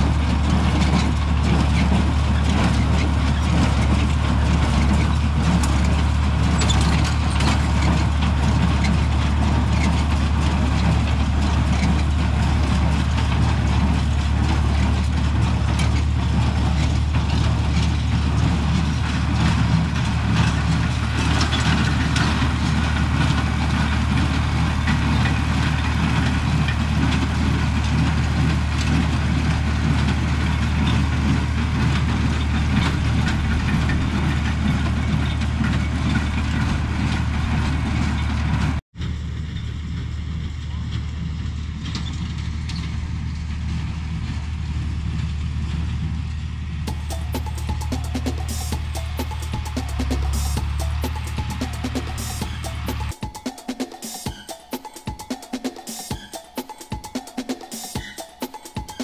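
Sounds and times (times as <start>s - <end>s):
tractor engine droning: 0.0s - 59.0s.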